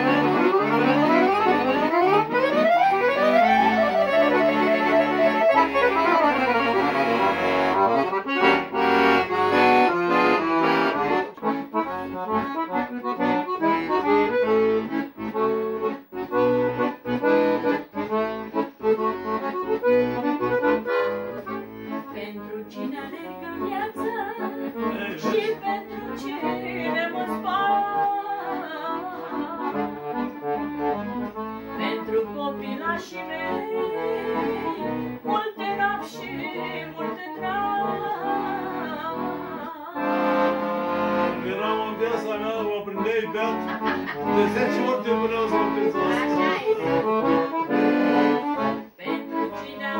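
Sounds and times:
accordions playing folk tune: 0.0 - 49.9
woman singing: 22.0 - 30.0, 31.7 - 40.4, 46.0 - 47.1, 48.1 - 49.9.

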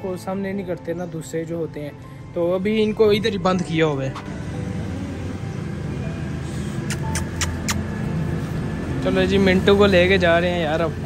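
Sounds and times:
engine running with low rumble: 2.6 - 11.0
sharp clicks: 6.8 - 7.9.

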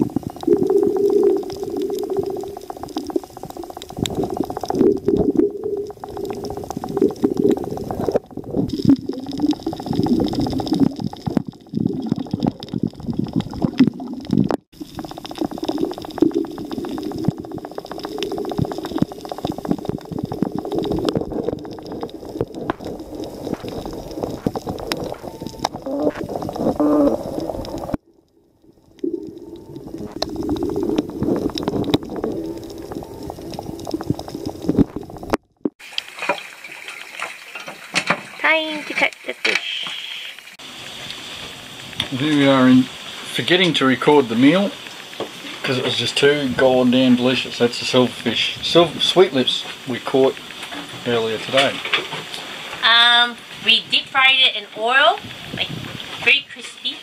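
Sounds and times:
water rushing and bubbling: 0.0 - 56.6
small crackling clicks underwater: 0.0 - 57.0.

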